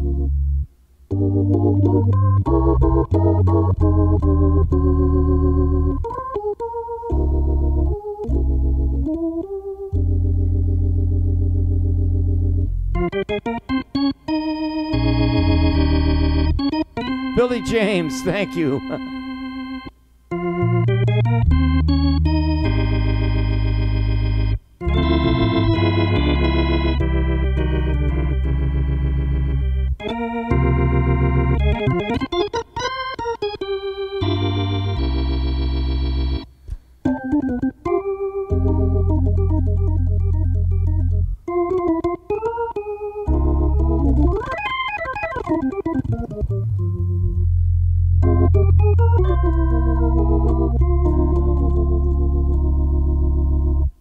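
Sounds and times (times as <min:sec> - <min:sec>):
organ bass pedal notes: 0:00.0 - 0:54.0
organ chords: 0:00.0 - 0:54.0.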